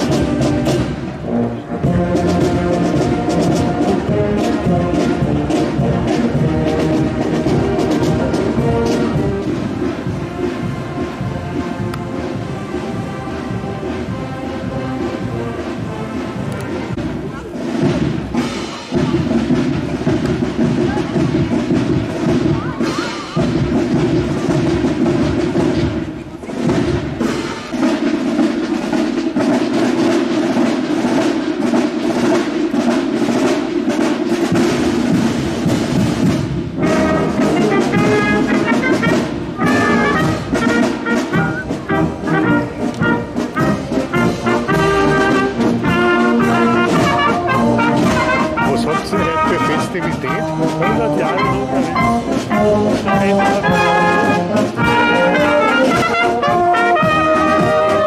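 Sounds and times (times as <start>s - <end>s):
brass marching band playing: 0.0s - 58.0s.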